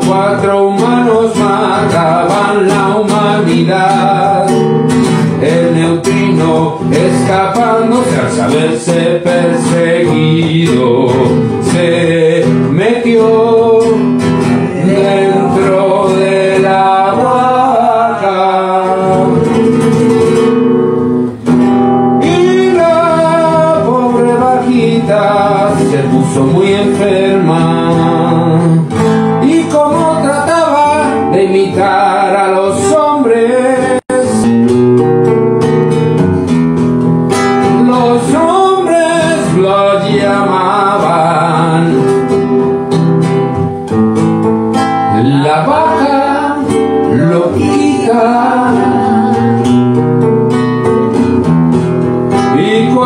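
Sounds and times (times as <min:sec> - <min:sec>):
man singing: 0:00.0 - 0:20.7, 0:22.1 - 0:34.8, 0:37.3 - 0:43.0, 0:44.7 - 0:50.0, 0:52.3 - 0:53.0
acoustic guitar strumming: 0:00.0 - 0:53.0.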